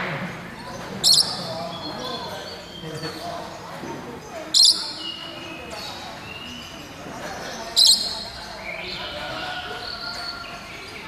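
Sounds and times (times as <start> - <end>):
murmur of voices: 0.0 - 11.0
high rising bird calls: 0.6 - 2.8.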